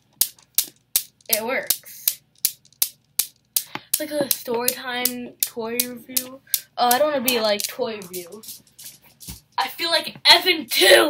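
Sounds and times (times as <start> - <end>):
steel balls clacking: 0.0 - 9.6.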